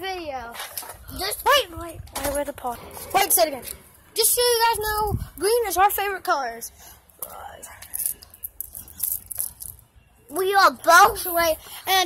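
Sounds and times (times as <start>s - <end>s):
soft whispering: 6.9s - 8.3s.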